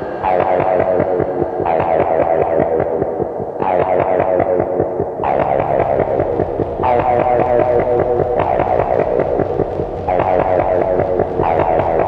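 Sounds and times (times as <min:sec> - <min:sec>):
throbbing electronic noise drone: 0:00.0 - 0:12.0.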